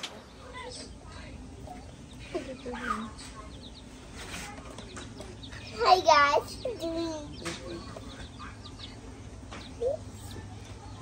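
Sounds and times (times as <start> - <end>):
baby chicks peeping: 0.0 - 11.0.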